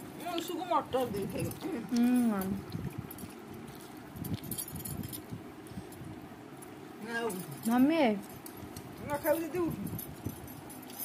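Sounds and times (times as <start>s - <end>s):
bangles jingling: 0.0s - 11.0s.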